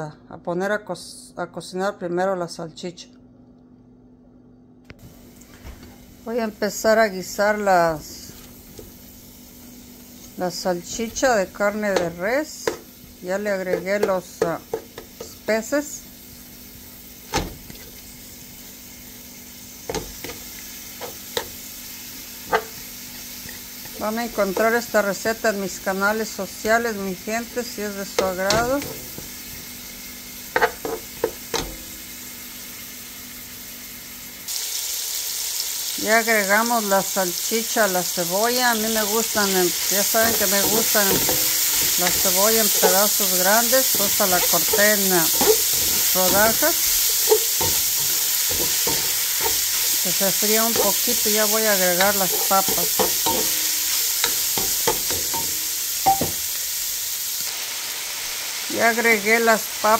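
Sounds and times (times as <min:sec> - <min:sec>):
sausage sizzling in a skillet: 0:05.0 - 0:59.9
spatula knocking against pan: 0:40.2 - 0:49.9, 0:51.9 - 0:56.4.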